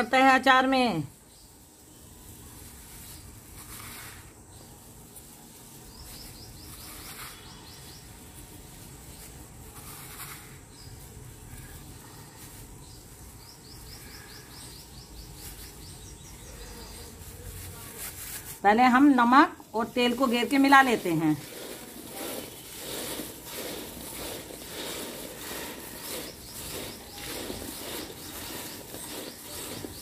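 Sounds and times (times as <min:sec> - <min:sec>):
fruit pieces rustling in steel bowl: 0:01.4 - 0:30.0.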